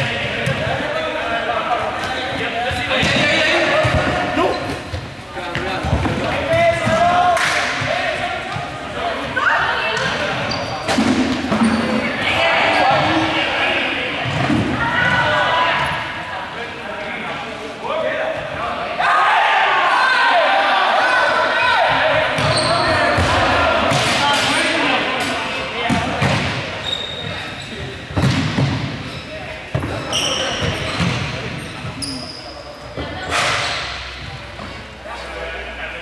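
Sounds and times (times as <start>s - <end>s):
players' voices: 0.0s - 36.0s
balls bouncing on gym floor: 2.0s - 8.7s, 21.9s - 24.2s, 25.8s - 29.1s, 29.7s - 31.9s.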